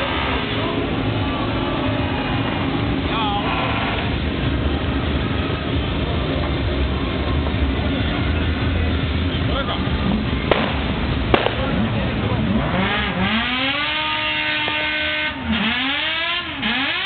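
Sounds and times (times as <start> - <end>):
motorcycle engines revving: 0.0 - 17.0.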